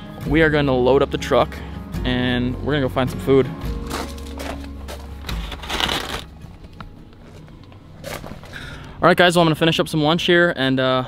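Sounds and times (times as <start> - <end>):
quiet background music: 0.0 - 11.0
plastic containers crackling: 3.8 - 8.8.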